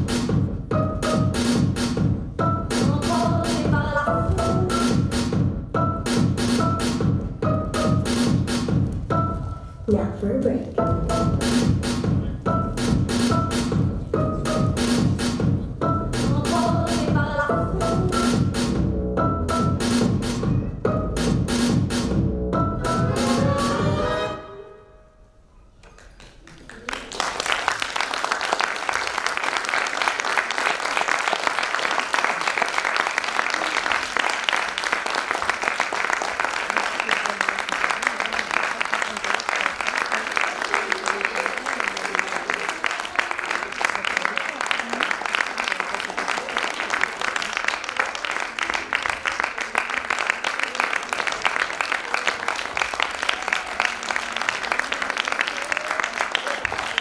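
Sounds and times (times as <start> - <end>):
audience applauding: 25.8 - 57.0.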